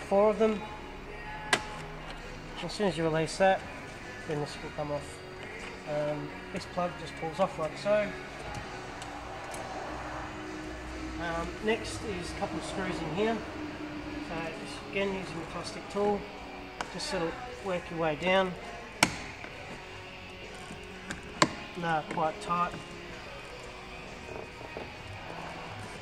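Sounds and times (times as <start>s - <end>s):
low steady hum: 0.0s - 26.0s.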